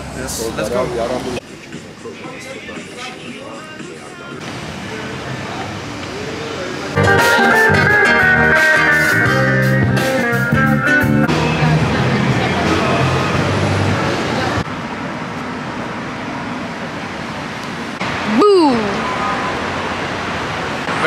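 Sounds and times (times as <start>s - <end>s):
city street traffic: 0.0s - 21.0s
street band guitar and drums: 7.0s - 14.2s.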